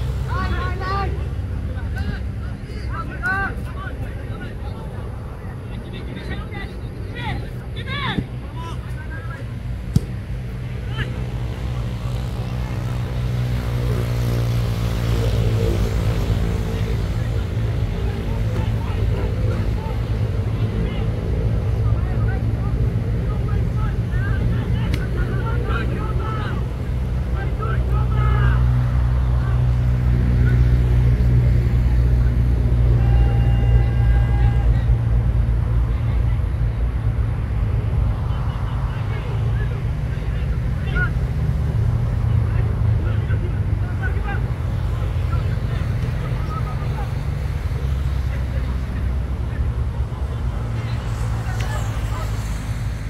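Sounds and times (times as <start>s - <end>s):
distant players shouting: 0.0s - 14.2s, 16.7s - 36.5s.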